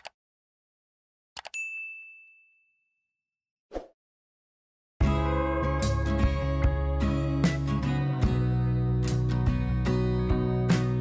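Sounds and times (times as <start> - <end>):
notification bell ding: 1.4 - 3.0.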